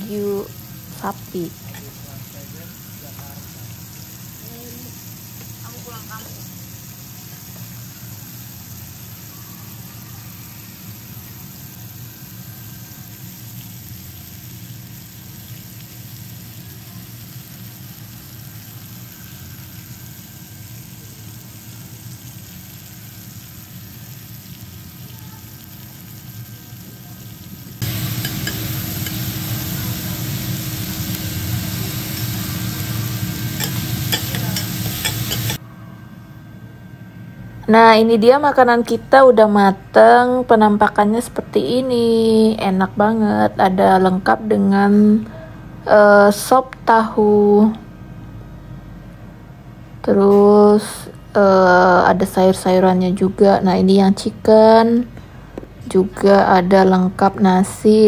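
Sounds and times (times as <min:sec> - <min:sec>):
meat sizzling on a griddle: 0:00.0 - 0:35.6
metal spatula scraping and tapping: 0:33.6 - 0:35.6.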